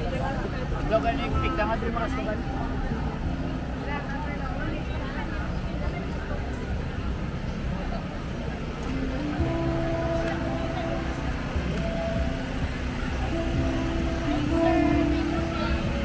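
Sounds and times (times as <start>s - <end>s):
crowd chatter: 0.0s - 16.0s
low steady rumble: 0.0s - 16.0s
slow melody of held notes: 0.9s - 5.2s, 8.8s - 16.0s.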